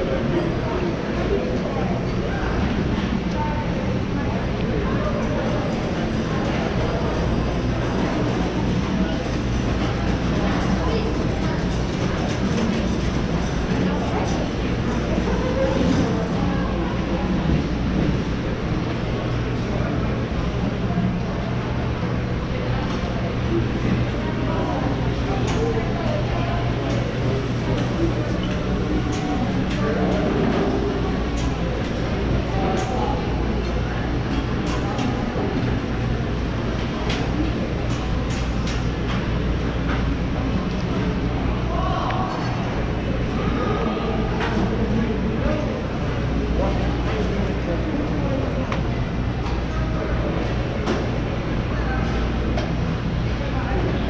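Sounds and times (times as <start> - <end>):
low hum and rushing noise: 0.0 - 54.0
murmur of voices: 0.0 - 54.0.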